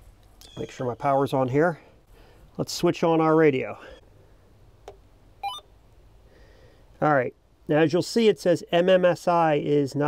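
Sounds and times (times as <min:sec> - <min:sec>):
electronic start-up beep: 0:05.4 - 0:05.6.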